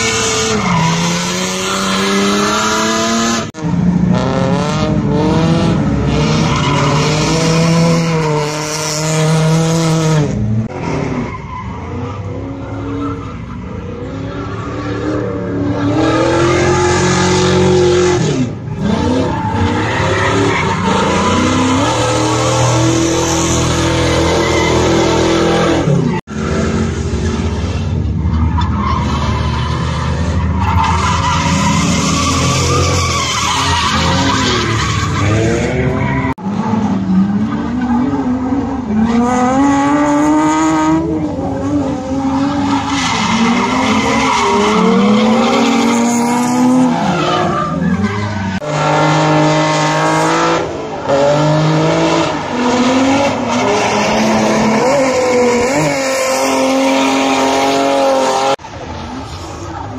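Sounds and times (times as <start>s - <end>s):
tyres squealing and skidding: 0.0s - 3.9s, 5.2s - 59.9s
car engines revving: 0.0s - 59.9s.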